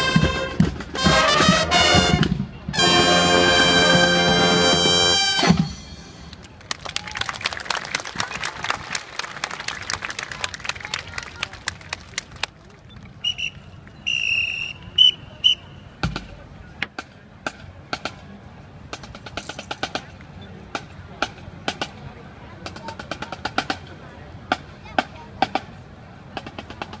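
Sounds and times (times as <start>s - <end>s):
snare drum marching beat: 0.0s - 5.7s
whistle blasts: 13.2s - 16.0s.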